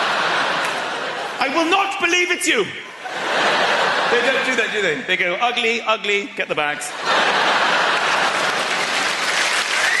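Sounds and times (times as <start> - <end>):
large audience applauding: 7.1 - 10.0.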